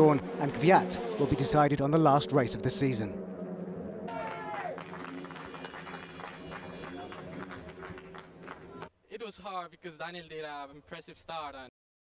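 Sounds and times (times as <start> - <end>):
crowd clapping and cheering: 4.1 - 8.9.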